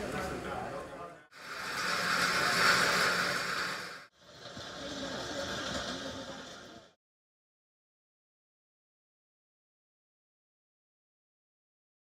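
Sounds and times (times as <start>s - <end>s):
rushing machinery noise: 1.4s - 7.0s
faint voices: 4.6s - 7.0s.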